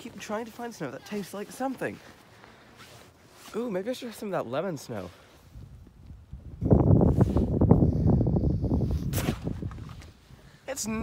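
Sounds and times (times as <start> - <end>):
puffy jacket rustling: 0.0 - 5.7, 6.9 - 7.7
snow crunching and scuffing: 0.0 - 5.7.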